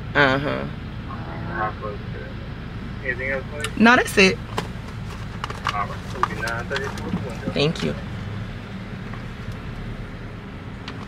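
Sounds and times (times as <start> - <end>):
low hum inside car: 0.0 - 11.0
person speaking: 5.6 - 8.1.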